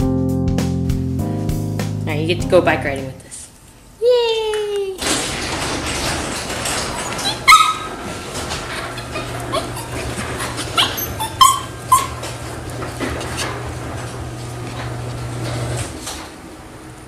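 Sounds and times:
small dog yipping: 7.2s - 7.9s, 10.8s - 12.2s.

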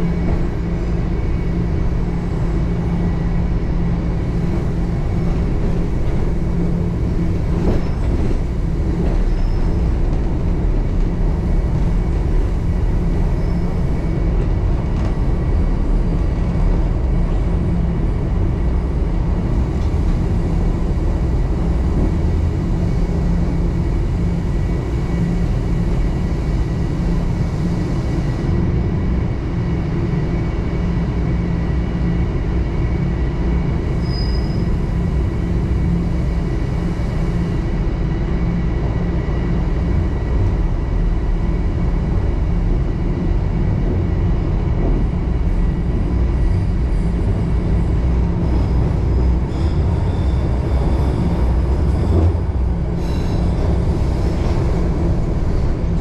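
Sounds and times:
subway train rumbling in tunnel: 0.0s - 56.0s.

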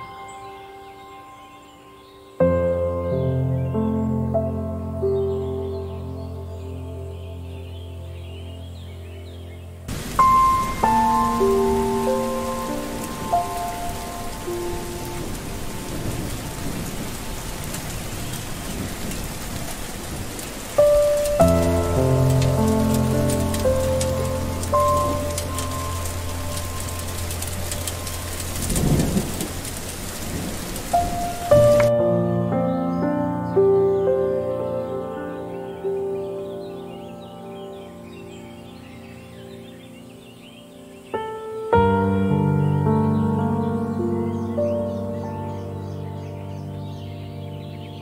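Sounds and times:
soft meditation music: 0.0s - 48.0s
steady rain hissing: 0.0s - 48.0s
thunder rumble: 9.9s - 32.3s.

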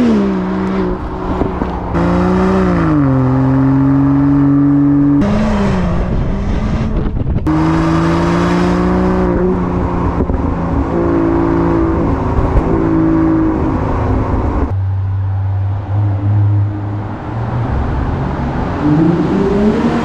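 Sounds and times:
car engine driving: 0.0s - 20.0s.

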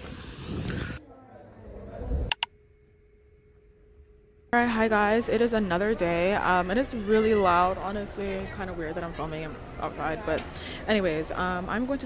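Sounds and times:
faint steady hum: 1.0s - 12.0s.

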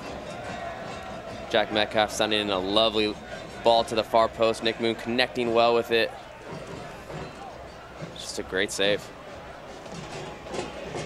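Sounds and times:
stadium crowd hum: 0.0s - 11.0s.

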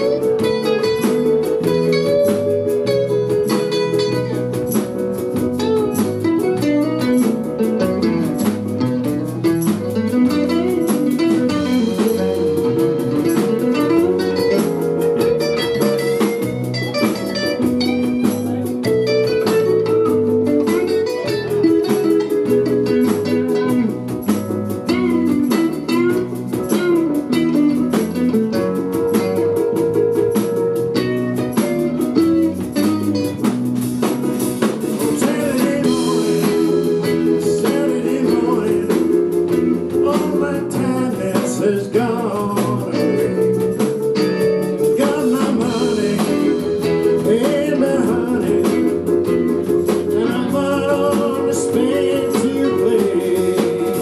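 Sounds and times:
bending lead guitar lines: 0.0s - 54.0s
blues band playing: 0.0s - 54.0s.

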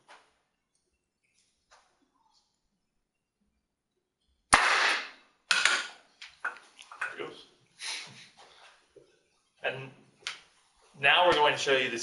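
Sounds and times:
sharp bang of canister cap: 4.5s - 5.9s.

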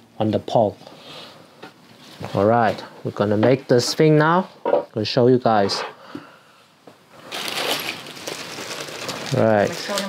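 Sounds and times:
plastic packet crinkling: 7.2s - 10.0s.

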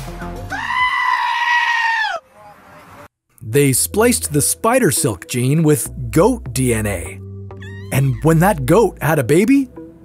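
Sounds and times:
goat bleating: 7.6s - 8.3s.

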